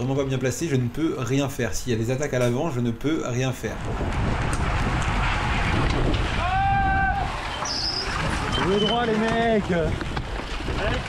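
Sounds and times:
tyre and road noise: 2.0s - 11.0s
wind rushing over microphone: 3.5s - 11.0s.

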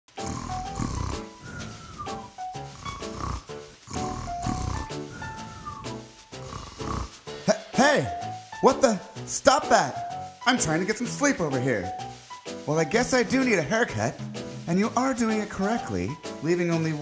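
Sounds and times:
comic snoring: 0.1s - 7.6s
light background music: 0.1s - 17.0s.

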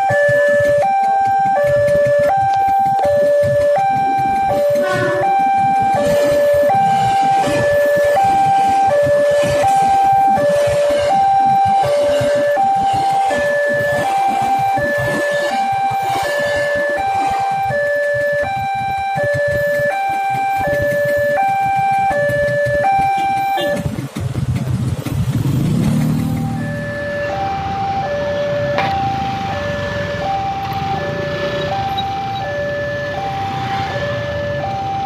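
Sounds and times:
two-tone crossing alarm: 0.0s - 24.2s, 25.4s - 35.0s
electric train rumbling past: 0.0s - 35.0s.

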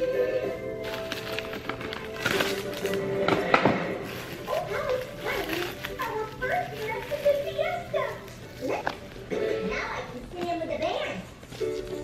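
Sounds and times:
background music: 0.0s - 12.0s
plastic cling wrap crinkling: 0.8s - 3.3s, 4.0s - 9.3s.

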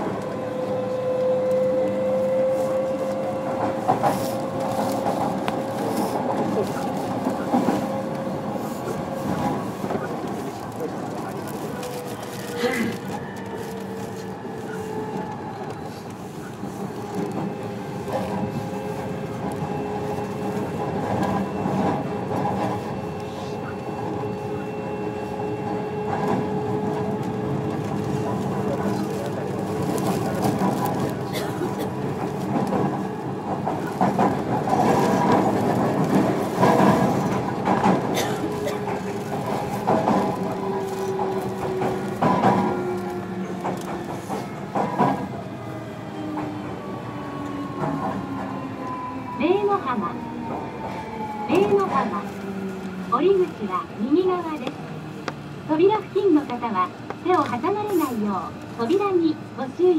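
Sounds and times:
train wheel and motor noise: 0.0s - 59.9s
rail clatter: 23.8s - 45.5s.

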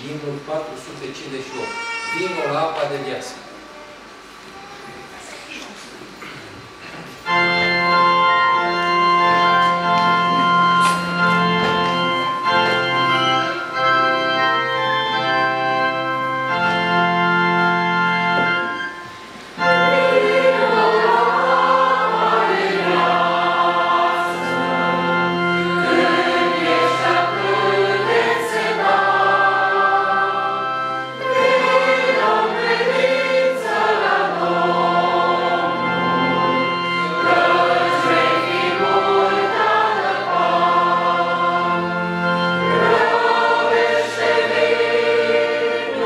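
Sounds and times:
organ chords: 6.3s - 46.0s
congregation singing a hymn: 6.7s - 46.0s.

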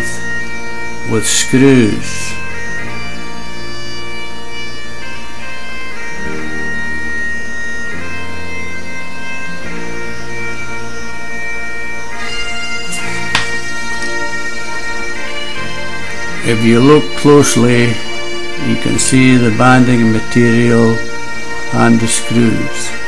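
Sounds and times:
bagpipe music: 0.0s - 23.0s.

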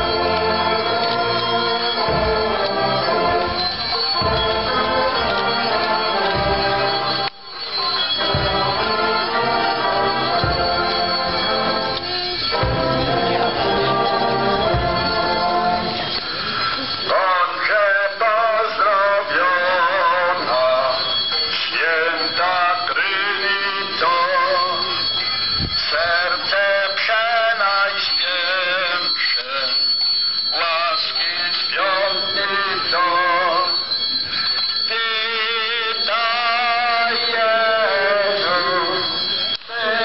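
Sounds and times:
organ chords: 0.0s - 21.0s
person singing with vibrato: 0.0s - 40.0s.

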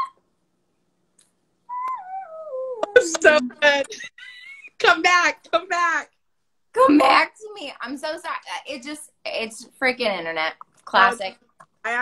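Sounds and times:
woman humming high: 1.7s - 3.6s.

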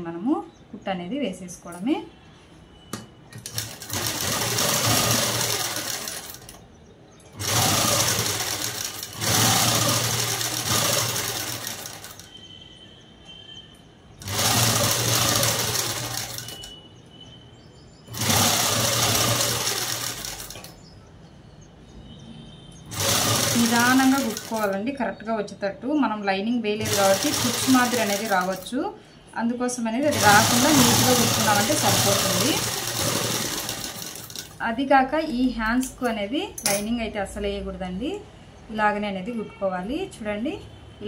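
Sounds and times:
sewing machine stitching: 3.4s - 6.6s, 7.4s - 12.3s, 14.2s - 16.8s, 18.1s - 20.8s, 22.9s - 24.8s, 26.8s - 28.7s, 30.0s - 34.6s.

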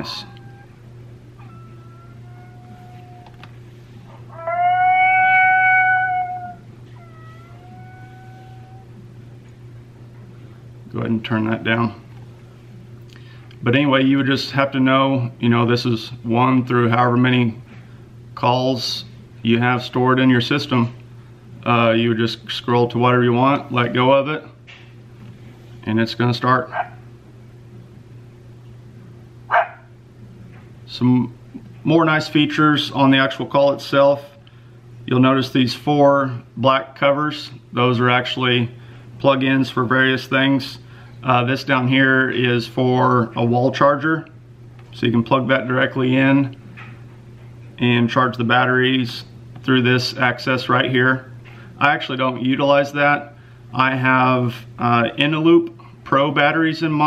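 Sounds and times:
recorded animal cry from speaker: 0.0s - 0.8s, 1.4s - 3.5s, 4.1s - 9.0s, 23.4s - 24.2s, 26.6s - 27.0s
low steady hum: 0.0s - 57.0s
dog bark: 26.7s - 27.0s, 29.5s - 29.9s.

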